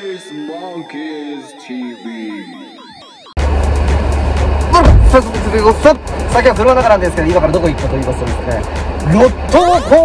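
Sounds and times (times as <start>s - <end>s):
man talking: 0.0s - 2.7s, 4.7s - 10.0s
synth jingle with falling sweeps: 0.0s - 3.6s.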